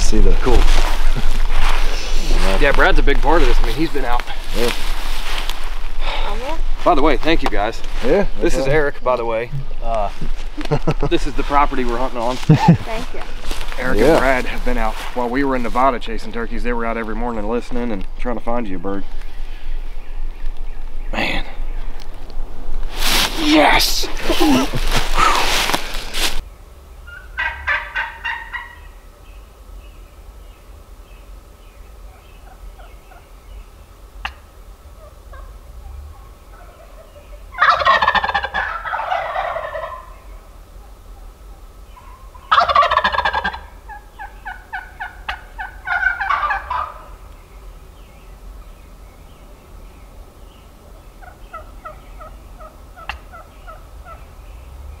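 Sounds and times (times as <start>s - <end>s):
turkeys gobbling: 27.0s - 29.0s, 32.0s - 33.3s, 34.2s - 47.3s, 50.5s - 54.7s
soft turkey calls: 27.0s - 29.4s, 31.6s - 47.5s, 48.1s - 54.8s.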